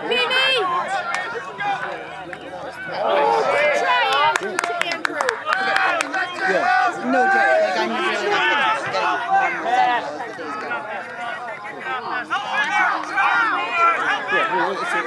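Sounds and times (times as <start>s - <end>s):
voices shouting: 0.0s - 15.0s.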